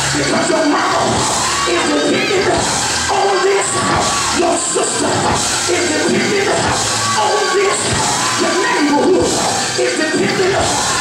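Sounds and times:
congregation shouting and cheering: 0.0 - 11.0
live gospel church music: 0.0 - 11.0
man shouting into a microphone: 0.0 - 11.0.

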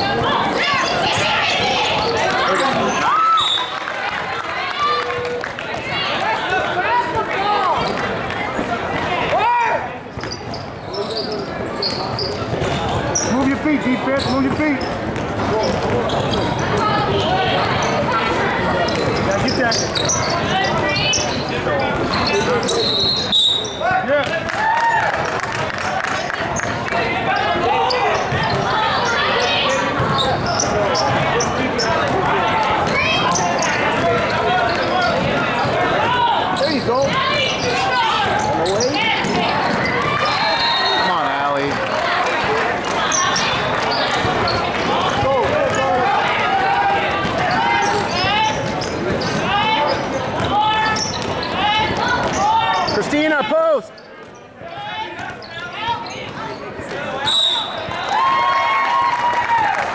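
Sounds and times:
sneakers squeaking: 0.0 - 3.8, 10.0 - 24.5, 25.5 - 41.7, 42.5 - 58.4
basketball bouncing on court: 11.8 - 22.6, 27.9 - 40.4, 42.8 - 46.4, 47.0 - 52.9.

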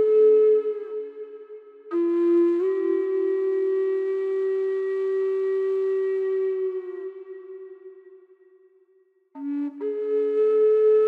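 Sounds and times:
flute holding long note: 0.0 - 8.6, 9.4 - 11.0.

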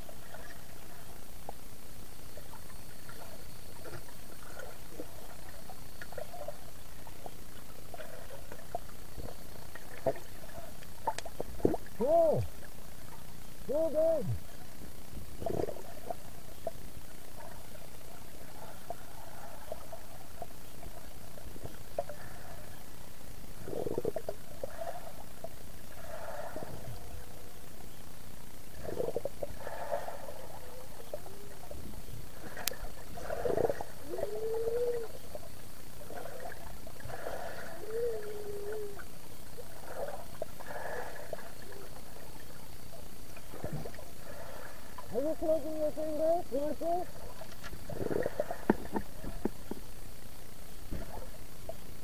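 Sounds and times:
muffled underwater hiss: 0.0 - 52.0
underwater swishing and bubbling: 0.0 - 52.0
short muffled pitched sounds: 13.7 - 14.4.

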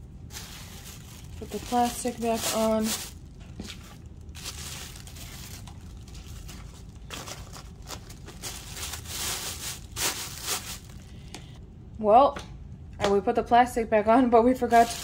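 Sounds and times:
plastic bag and paper crinkling: 0.2 - 11.6, 14.7 - 15.0.

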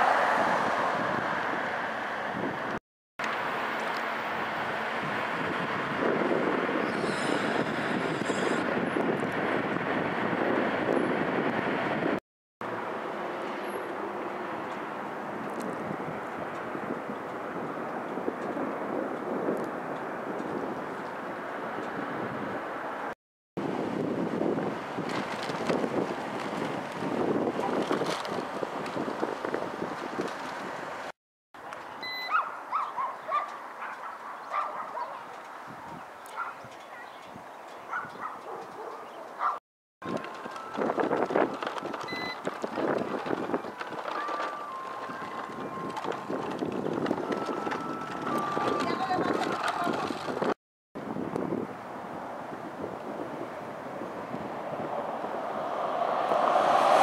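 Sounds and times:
wind on microphone: 0.0 - 2.8, 4.7 - 12.2, 15.1 - 31.1, 35.5 - 57.0
distant traffic: 0.0 - 12.0, 12.6 - 24.0, 24.7 - 50.3, 51.6 - 57.0.

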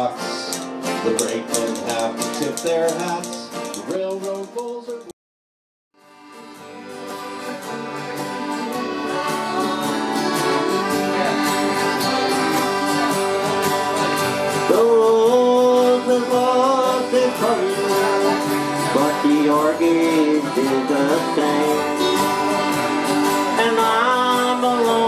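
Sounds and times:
acoustic guitars strumming: 0.0 - 5.1, 6.0 - 25.0
sliding melody line: 6.6 - 25.0.

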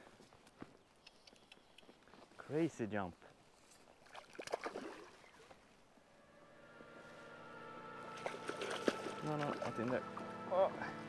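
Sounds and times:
fish splashing at water surface: 4.1 - 5.2
background music: 6.2 - 11.0.

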